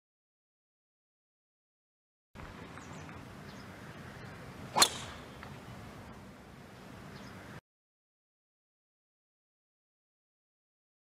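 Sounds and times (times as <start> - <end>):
golf driver striking ball: 4.7 - 5.6.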